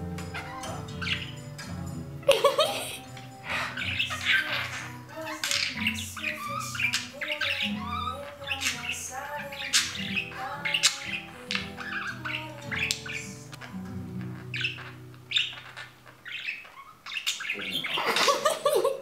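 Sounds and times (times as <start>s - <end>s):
background music with sustained notes: 0.0s - 16.5s
budgerigar chattering and chirping: 0.2s - 1.8s, 2.9s - 18.5s.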